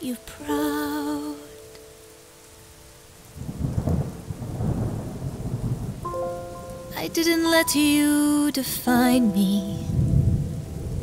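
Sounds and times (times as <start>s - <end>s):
rain: 0.0s - 11.0s
thunder rumbling: 3.4s - 8.9s, 9.7s - 11.0s
held musical notes: 6.0s - 11.0s.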